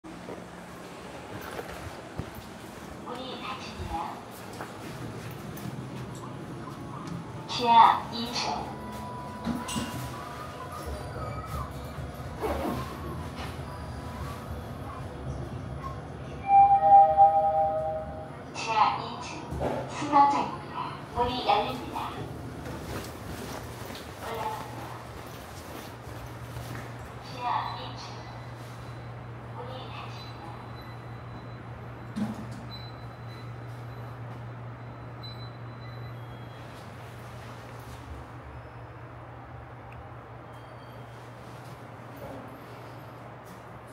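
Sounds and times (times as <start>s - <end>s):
subway station platform hum: 0.0s - 43.9s
elevator arrival chime: 7.4s - 12.4s, 16.4s - 18.5s, 27.3s - 39.1s, 40.4s - 43.0s.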